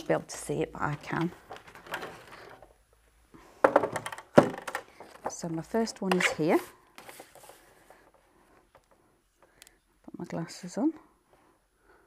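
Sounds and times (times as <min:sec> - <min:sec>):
card stock rustling: 0:06.2 - 0:08.0.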